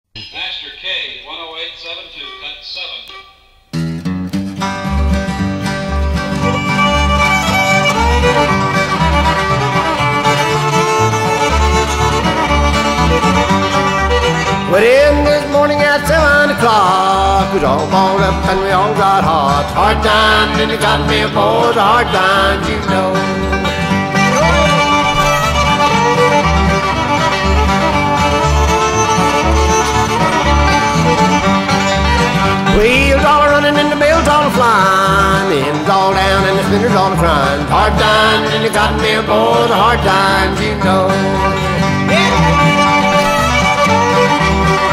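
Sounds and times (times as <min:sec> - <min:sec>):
strummed guitar: 0:02.3 - 0:44.9
bass notes: 0:03.6 - 0:44.9
fiddle playing tune: 0:04.4 - 0:44.9.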